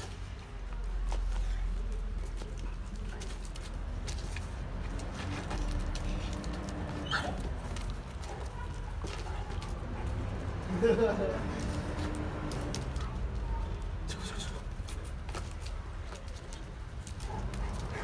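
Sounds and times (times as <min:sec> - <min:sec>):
paws scuffling on concrete: 0:00.0 - 0:18.0.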